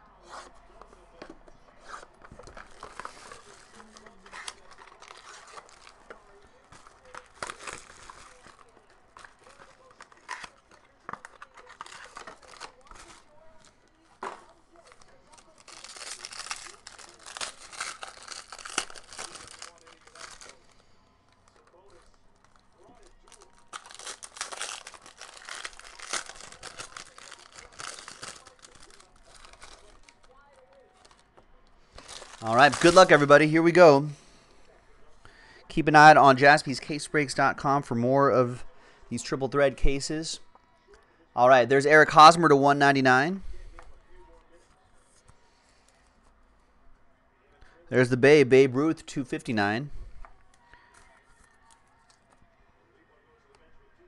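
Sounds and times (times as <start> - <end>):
wrappers crinkling and tearing: 1.9 - 34.1
blade slitting plastic wrap: 15.6 - 20.6, 23.2 - 30.2.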